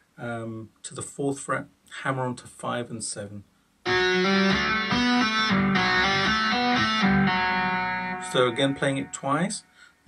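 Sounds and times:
electric guitar tapping run: 3.9s - 8.4s.

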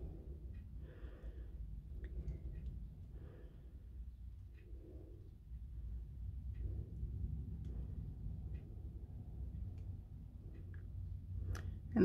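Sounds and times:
person breathing softly: 0.0s - 9.3s
steady low rumble: 0.0s - 12.0s.

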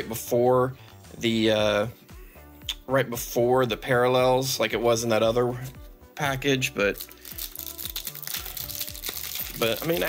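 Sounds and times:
background music low notes: 0.0s - 10.0s
cellophane wrapper crinkling: 6.9s - 10.0s.

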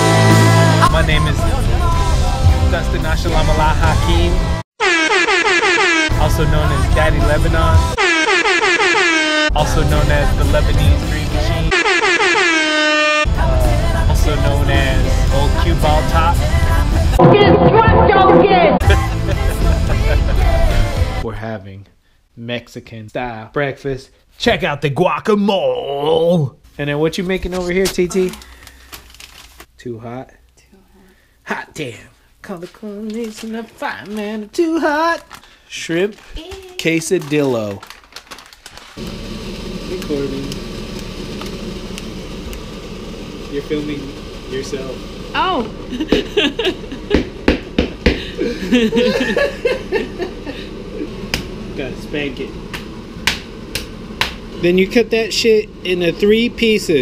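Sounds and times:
horn-like tone sliding down: 11.7s - 13.3s, 17.2s - 18.8s
steady mechanical hum: 39.0s - 57.0s.

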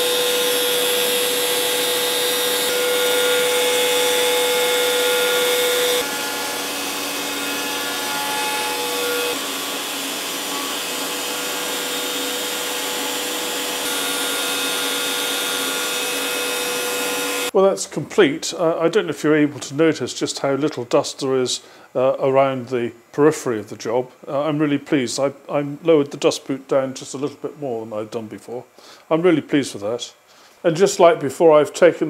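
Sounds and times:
bit cutting wood: 0.0s - 17.5s
router whining: 0.0s - 17.5s.

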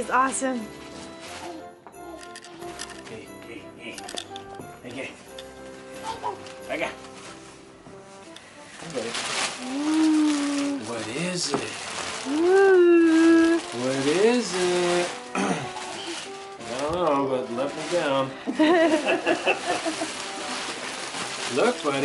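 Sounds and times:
wrapping paper rustling: 0.0s - 1.7s, 5.6s - 22.0s.

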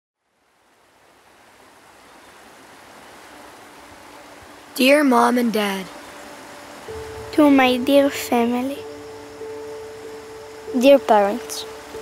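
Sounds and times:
river rushing: 0.3s - 12.0s
faint low held tone: 6.8s - 12.0s.

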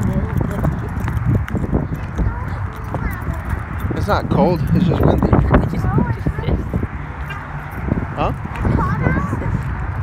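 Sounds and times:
faint voices: 0.0s - 10.0s
footsteps on asphalt: 0.0s - 10.0s
wind buffeting microphone: 0.0s - 10.0s.

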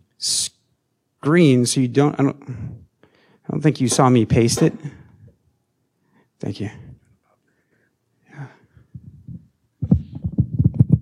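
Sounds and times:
low dull thumps and knocks: 9.0s - 11.0s.

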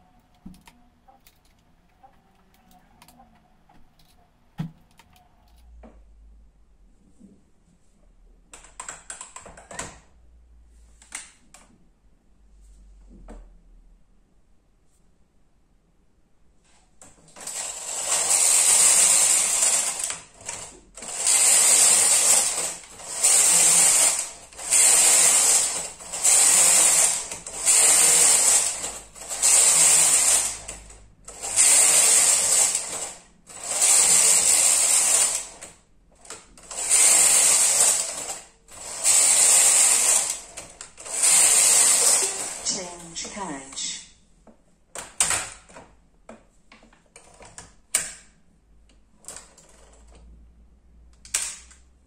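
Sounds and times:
knitting machine carriage sliding: 17.0s - 43.0s, 46.9s - 48.2s, 49.2s - 50.3s.

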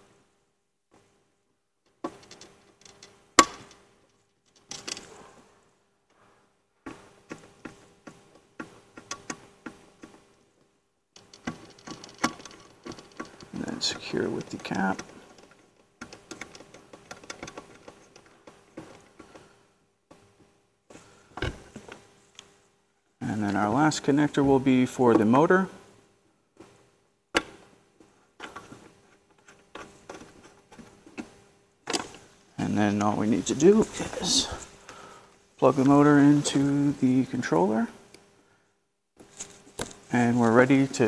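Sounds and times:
cable rustling: 6.1s - 20.2s, 28.0s - 37.0s.

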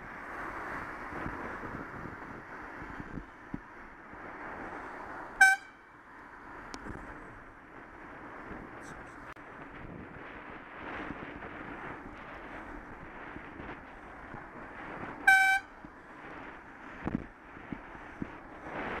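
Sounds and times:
road and wind noise: 0.0s - 19.0s
car horn toot: 5.4s - 5.8s, 15.2s - 15.8s.

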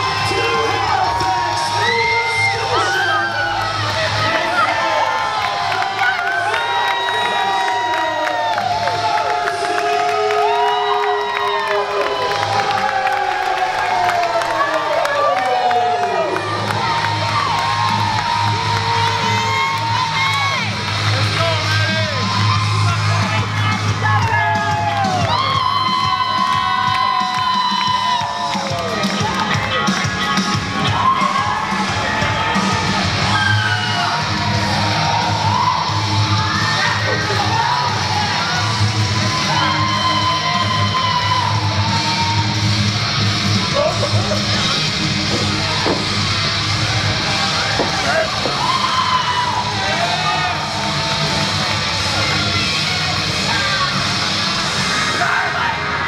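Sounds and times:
crowd cheering and yelling: 0.0s - 56.0s
wrestling entrance music: 15.3s - 56.0s.

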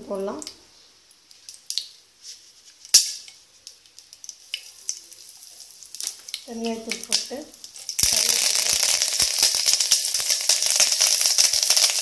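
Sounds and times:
oil crackling and popping: 0.4s - 12.0s
hot oil sizzling in a pot: 2.9s - 12.0s.

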